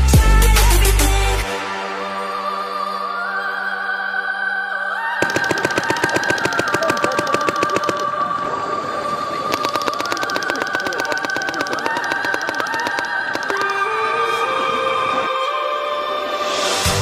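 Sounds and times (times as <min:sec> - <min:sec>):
background music: 0:00.0 - 0:06.7, 0:12.2 - 0:17.0
paintball markers firing: 0:05.2 - 0:08.3, 0:09.5 - 0:14.0.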